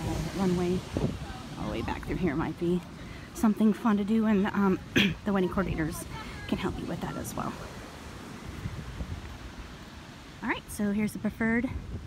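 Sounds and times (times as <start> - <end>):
beach surf: 0.0 - 12.0
wind buffeting microphone: 0.0 - 12.0.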